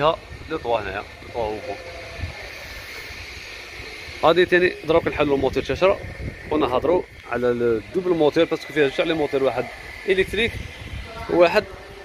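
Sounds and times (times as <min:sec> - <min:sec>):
wind rumble on microphone: 0:00.0 - 0:03.3, 0:03.9 - 0:08.3, 0:08.9 - 0:12.0
faint outdoor background noise: 0:00.0 - 0:12.0.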